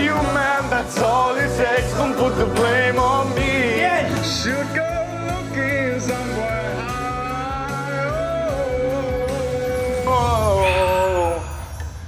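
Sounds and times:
man singing into a microphone: 0:00.0 - 0:11.7
recorded backing track: 0:00.0 - 0:11.9.

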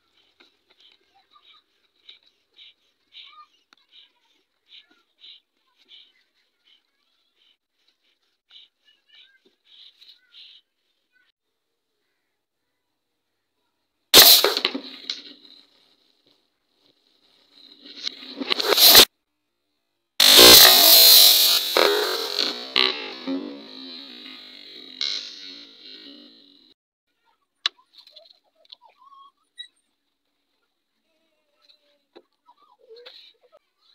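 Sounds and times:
gas bottle bursting: 0:14.2 - 0:15.1, 0:18.0 - 0:19.1, 0:20.2 - 0:24.0.

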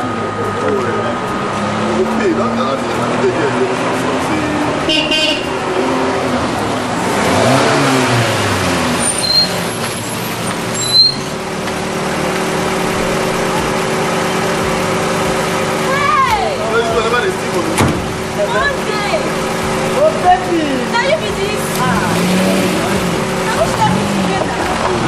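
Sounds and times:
road vehicle noise: 0:00.0 - 0:25.0
sharp knock: 0:17.8 - 0:18.1.

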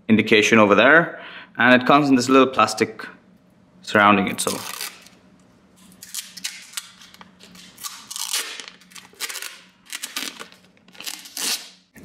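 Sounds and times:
plastic film crinkling: 0:04.4 - 0:05.2, 0:05.8 - 0:11.9.

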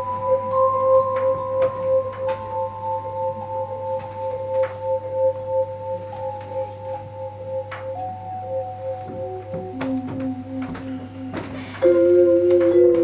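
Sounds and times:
vibraphone sustained notes: 0:00.0 - 0:13.0.

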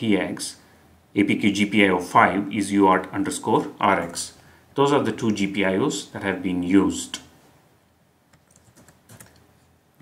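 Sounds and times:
faint keyboard keystrokes: 0:08.3 - 0:09.5.

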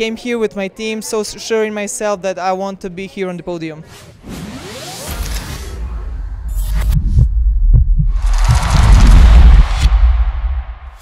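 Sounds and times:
rising whoosh: 0:05.6 - 0:11.0
deep throbbing low pulse: 0:06.0 - 0:11.0.

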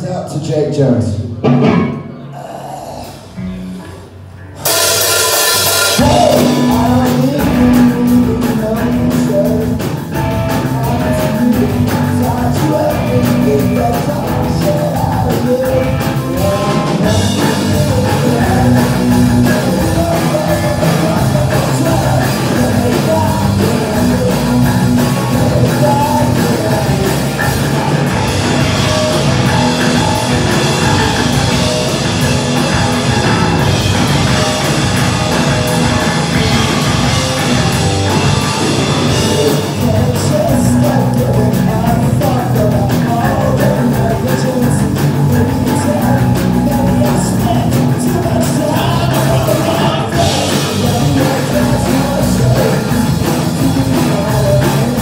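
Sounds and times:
live rock band playing: 0:00.0 - 0:55.0
steady bass notes: 0:03.1 - 0:55.0
cymbals struck: 0:04.6 - 0:06.0.

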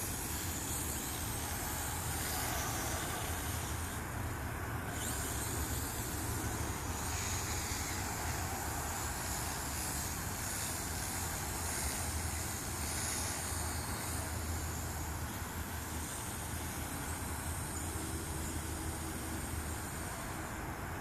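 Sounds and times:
quadcopter motors whining: 0:00.0 - 0:21.0.

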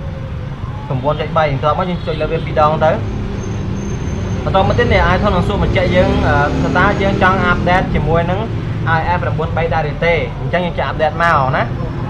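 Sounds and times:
person talking: 0:04.5 - 0:12.0.

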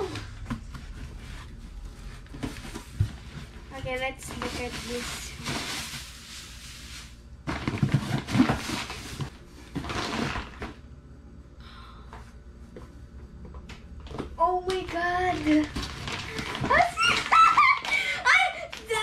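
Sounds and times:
paper and cardboard rustling: 0:00.0 - 0:10.7, 0:14.8 - 0:19.0.

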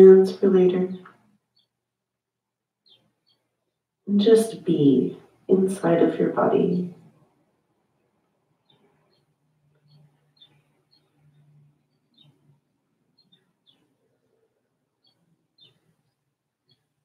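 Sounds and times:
faint bird chirps: 0:00.2 - 0:01.8, 0:02.8 - 0:05.4, 0:08.4 - 0:17.0.

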